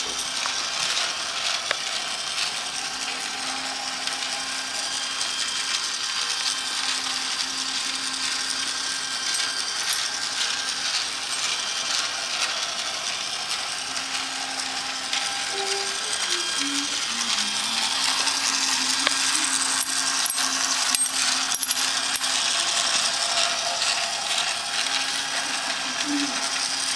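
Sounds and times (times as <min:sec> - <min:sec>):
small motor and gears whirring: 0:00.0 - 0:26.9.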